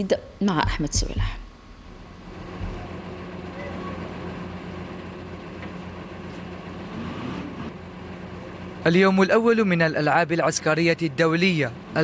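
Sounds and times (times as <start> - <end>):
armoured vehicle engines droning: 1.8 - 12.0.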